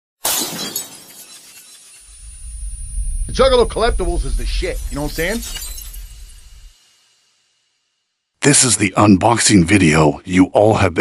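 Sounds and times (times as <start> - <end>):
glass shattering: 0.2 - 2.2, 4.7 - 7.4
falling glass shards: 0.2 - 2.3, 4.8 - 7.7.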